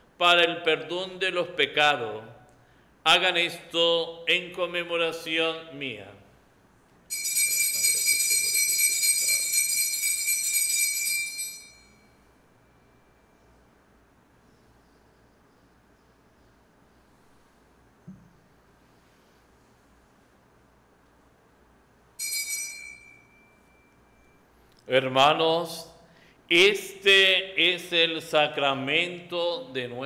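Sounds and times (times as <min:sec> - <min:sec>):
small bells jingling: 0:07.1 - 0:12.2, 0:22.2 - 0:24.3.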